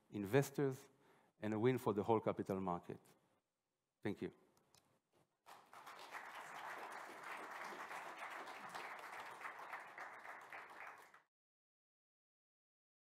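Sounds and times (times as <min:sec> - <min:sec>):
audience applauding: 0:05.5 - 0:11.3.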